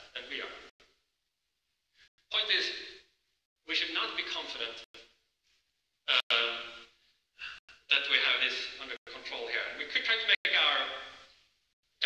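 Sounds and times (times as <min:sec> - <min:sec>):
man lecturing: 0:00.0 - 0:00.7, 0:02.3 - 0:03.0, 0:03.6 - 0:05.2, 0:06.1 - 0:06.9, 0:07.8 - 0:11.2.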